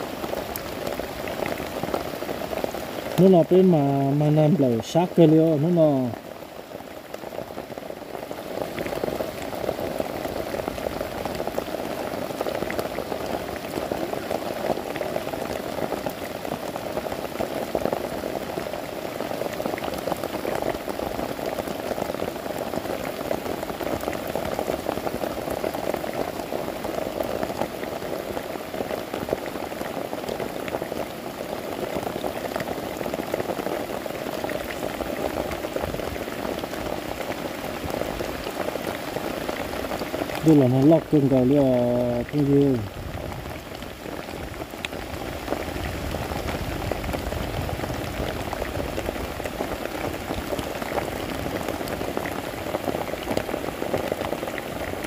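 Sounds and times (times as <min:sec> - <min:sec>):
steady rain pattering: 0:00.0 - 0:55.0.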